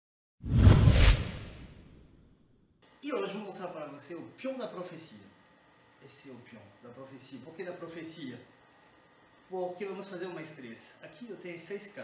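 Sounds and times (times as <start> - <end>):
whoosh sound effect: 0.4 - 2.0
deep rumble: 0.5 - 2.0.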